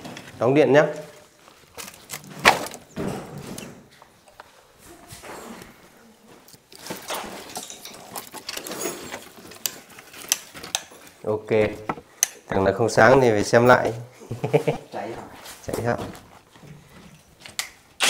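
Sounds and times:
firewood knocking and clattering: 6.8s - 12.1s.

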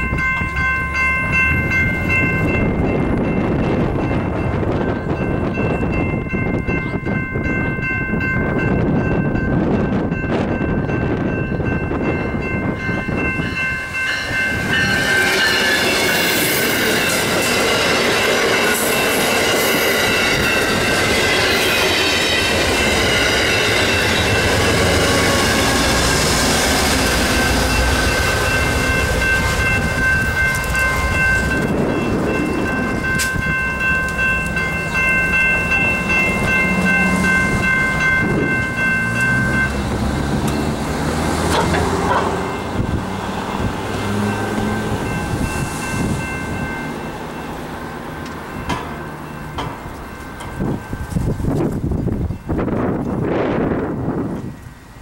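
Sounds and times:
diesel locomotive engine: 0.0s - 55.0s
wheels on rails: 0.0s - 55.0s.

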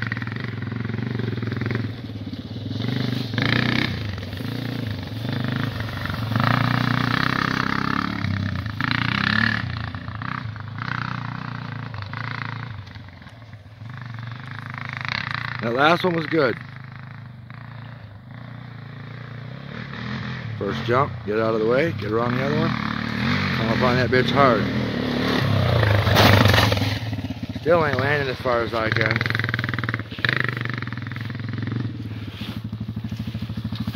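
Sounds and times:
quad bike engine running: 0.0s - 33.9s.

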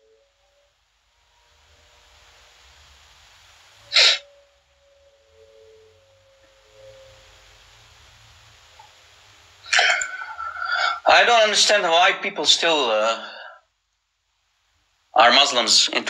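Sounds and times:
faint steady hiss: 0.0s - 16.0s
sharp breath burst: 3.9s - 4.3s, 10.0s - 11.0s.

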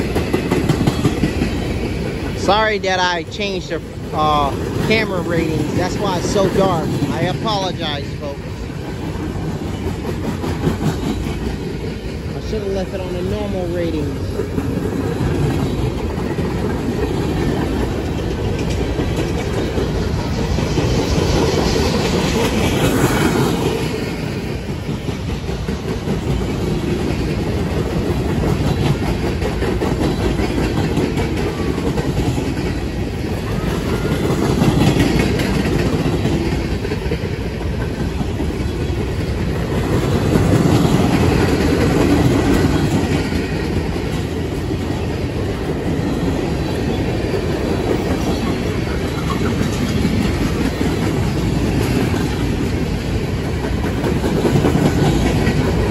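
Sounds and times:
freight train wheels clattering: 0.0s - 55.9s.

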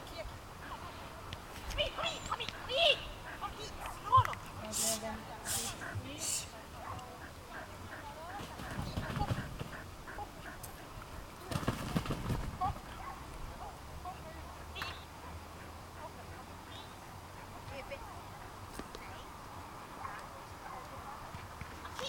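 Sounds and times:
woman calling commands to dog: 1.8s - 7.2s
short hissing sounds: 4.6s - 6.6s
dull thumping in fabric tunnel: 11.5s - 12.9s.

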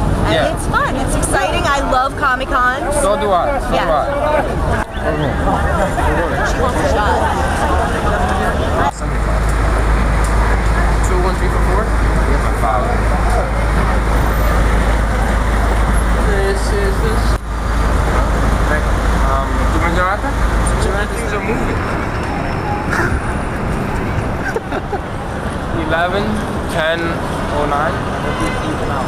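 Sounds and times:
city street traffic: 0.0s - 29.0s
voices of passers-by: 0.0s - 29.0s.

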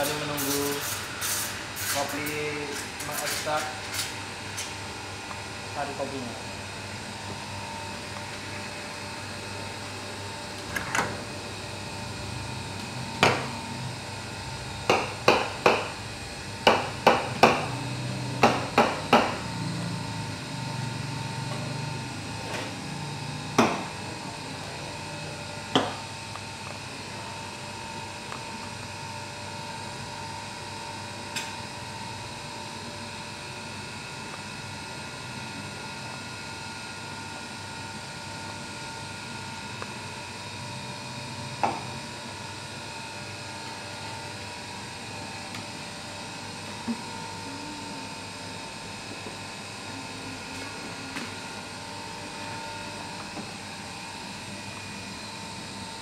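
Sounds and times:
steady low hum: 43.2s - 56.0s.

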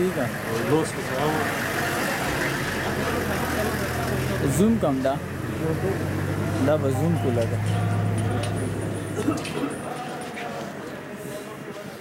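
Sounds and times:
vehicle engine idling: 0.0s - 9.4s
men talking: 0.0s - 12.0s.

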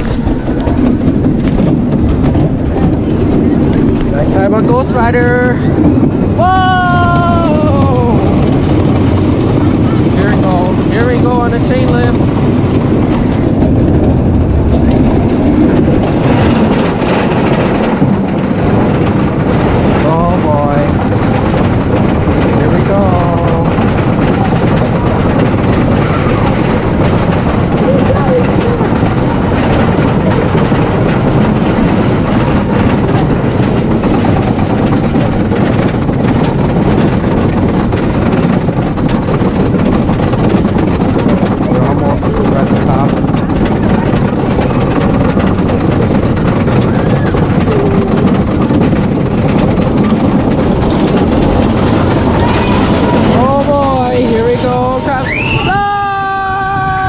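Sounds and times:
roller coaster lift chain clatter: 0.0s - 57.0s
riders' voices: 20.0s - 21.7s, 52.5s - 57.0s.

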